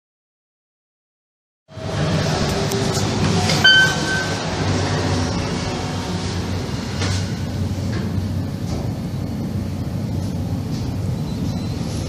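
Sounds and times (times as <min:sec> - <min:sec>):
elevator hum and rumble: 0:01.7 - 0:12.0
short electronic beep: 0:03.6 - 0:04.5, 0:11.2 - 0:12.0.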